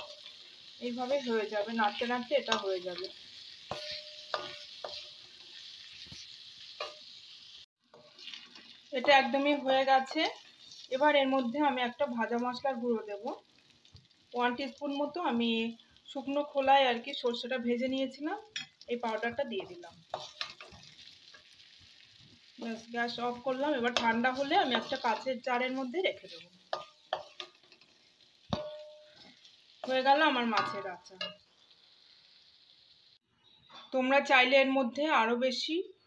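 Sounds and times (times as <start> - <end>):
frying sizzle: 0.0 - 33.2
spatula scraping and knocking pan: 1.8 - 7.2, 18.6 - 21.6, 22.2 - 31.4.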